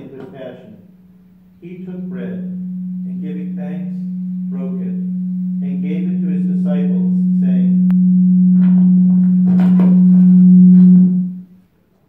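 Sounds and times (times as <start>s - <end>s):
loud low hum: 0.8s - 11.6s.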